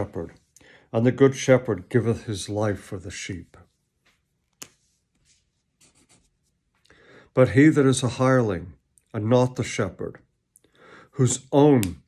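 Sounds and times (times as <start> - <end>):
faint soft rustles: 3.2 - 6.9.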